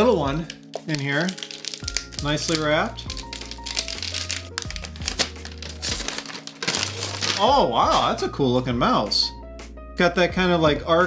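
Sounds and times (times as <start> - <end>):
background music with bass notes: 0.0 - 11.0
wrapping paper tearing and crinkling: 0.5 - 8.1.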